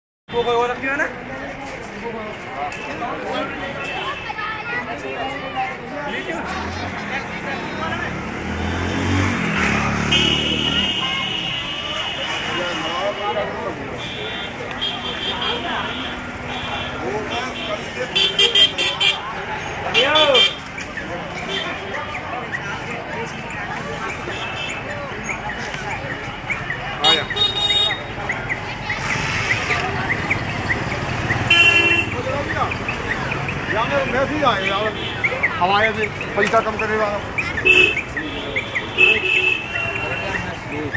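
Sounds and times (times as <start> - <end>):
street chatter: 0.3 - 40.9
vehicle engine revving: 6.5 - 11.0
vehicle horn honk: 10.1 - 13.2, 31.5 - 32.2.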